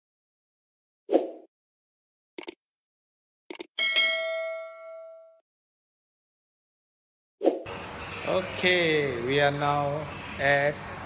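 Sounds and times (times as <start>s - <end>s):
bright bell ding: 3.8s - 5.4s.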